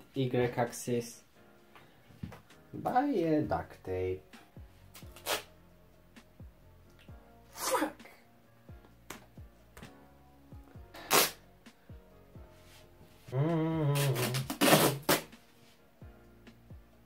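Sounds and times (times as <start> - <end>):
faint background music: 0.0 - 17.0
duct tape ripping off roll: 4.9 - 5.5, 10.9 - 11.4, 13.8 - 15.4.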